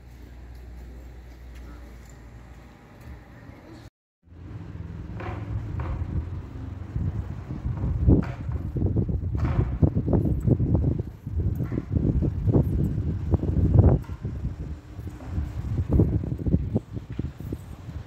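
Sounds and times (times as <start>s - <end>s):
wind buffeting microphone: 4.5s - 18.0s.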